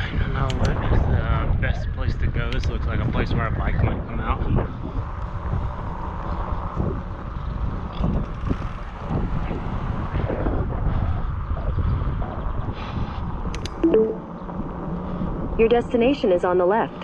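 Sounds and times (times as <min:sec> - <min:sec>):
low rumble of bicycle ride: 0:00.0 - 0:17.0
wind buffeting microphone: 0:00.0 - 0:17.0
sharp clicks: 0:13.5 - 0:14.1.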